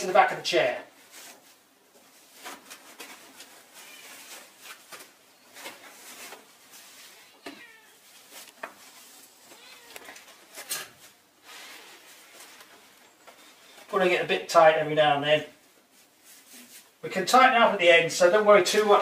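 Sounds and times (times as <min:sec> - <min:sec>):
cat meowing: 0:07.2 - 0:08.0, 0:09.5 - 0:10.2.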